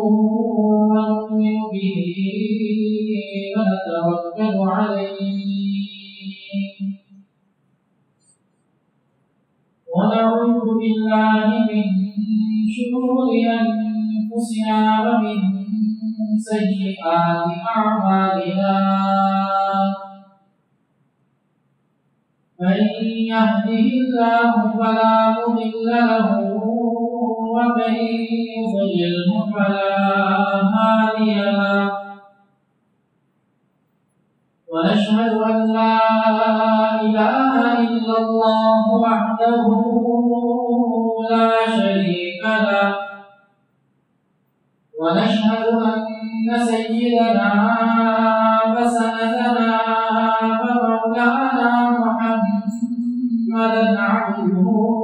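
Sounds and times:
man chanting melodically: 0.0s - 7.0s, 9.9s - 20.5s, 22.6s - 32.4s, 34.7s - 43.6s, 45.0s - 55.0s.

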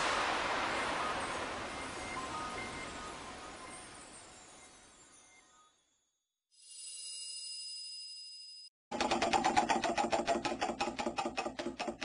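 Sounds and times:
high bell-like ringing tone: 6.6s - 8.7s
rapid mechanical clicking clatter: 8.9s - 12.0s.

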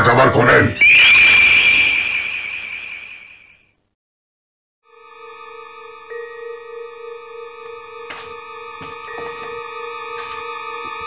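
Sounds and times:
high whistle-like sliding tone: 0.7s - 3.6s.

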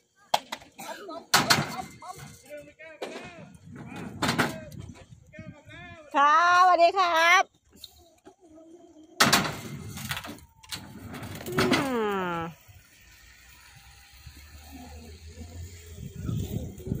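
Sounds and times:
skateboard wheels rolling on concrete: 0.0s - 17.0s
person calling out: 11.7s - 12.6s.

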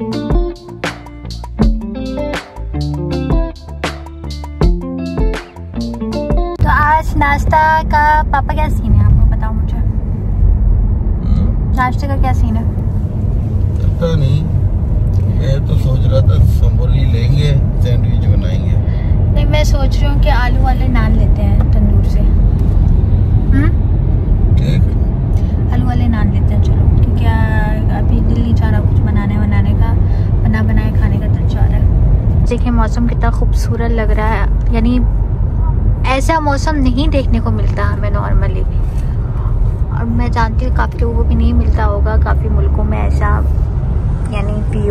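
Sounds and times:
car road and engine rumble: 0.0s - 44.9s.

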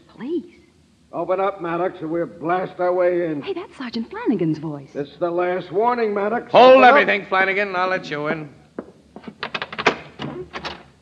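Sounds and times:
door unlocking clicks and knocks: 9.4s - 10.9s.

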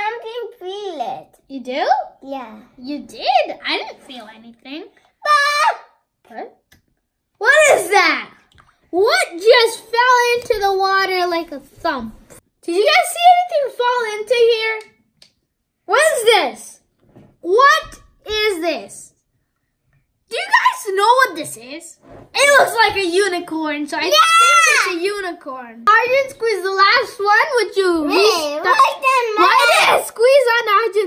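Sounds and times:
child exclaiming: 5.2s - 6.0s, 7.4s - 8.1s, 24.0s - 25.1s, 28.0s - 30.7s
child's high-pitched exclamation: 24.1s - 25.0s.

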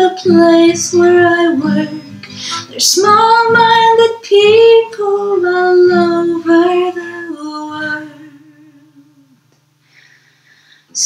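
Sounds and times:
acoustic guitar note ringing: 0.3s - 4.0s.

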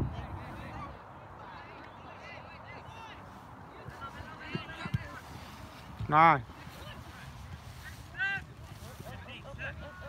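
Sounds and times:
outdoor air noise: 0.0s - 10.0s.

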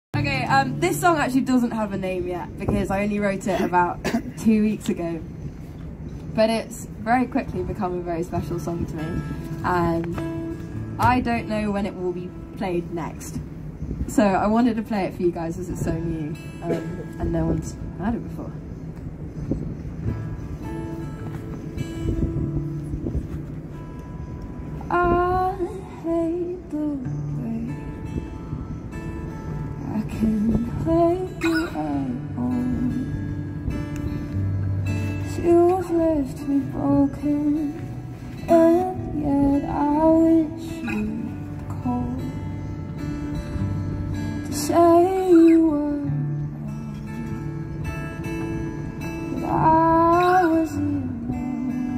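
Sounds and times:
acoustic guitar playing: 0.2s - 51.9s.

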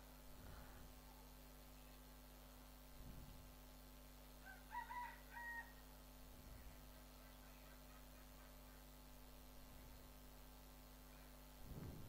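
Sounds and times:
low electrical hum: 0.0s - 12.0s
distant animal call: 11.0s - 11.6s.

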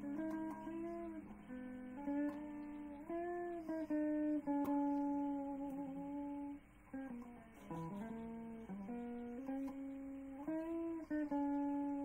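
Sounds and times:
guitar playing slow melody: 0.0s - 12.0s.

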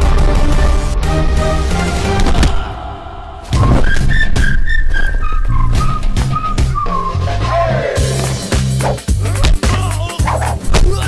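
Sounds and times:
fight hits and whooshes: 3.4s - 4.5s
whistle-like melody: 3.6s - 7.6s
heavy pulsing bass beat: 8.0s - 11.0s.

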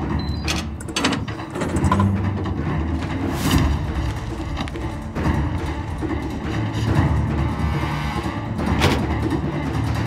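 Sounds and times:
low rumbling drone music: 0.0s - 10.0s.

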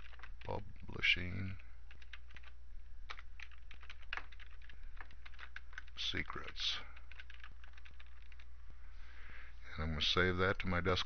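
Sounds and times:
computer keyboard typing: 0.0s - 0.6s, 1.4s - 8.5s
steady low hum: 0.0s - 11.0s.

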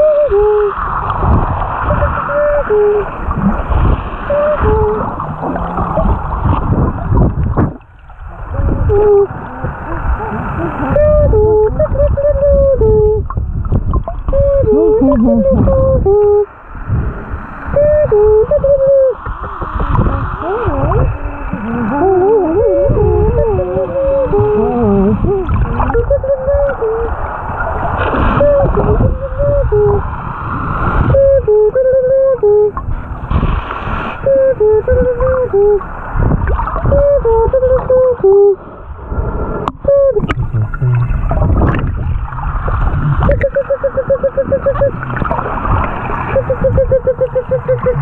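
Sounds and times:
person humming under water: 0.0s - 7.8s, 8.4s - 27.3s, 28.3s - 30.2s, 31.0s - 33.0s, 34.2s - 38.7s, 39.6s - 48.0s
water rushing and sloshing: 0.0s - 48.0s.

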